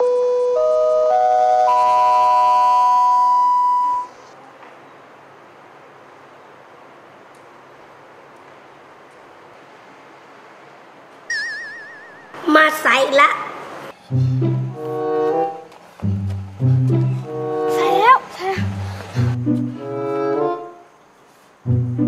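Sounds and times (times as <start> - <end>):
faint steady hiss: 0.0 - 22.0
electronic chime rising notes: 0.6 - 4.2, 11.3 - 12.4
short warbling electronic tone: 11.3 - 12.4.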